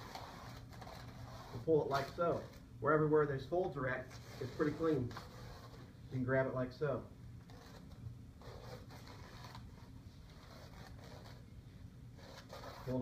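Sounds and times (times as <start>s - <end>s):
masking tape peeling: 0.0s - 2.7s, 4.1s - 5.9s, 7.4s - 11.5s, 12.2s - 13.0s.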